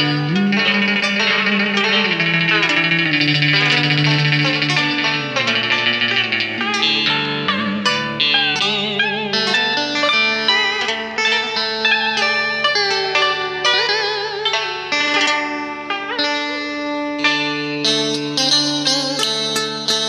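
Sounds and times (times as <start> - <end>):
steady low bass line: 0.0 - 11.6
guitar with bent wavering notes: 0.0 - 20.0.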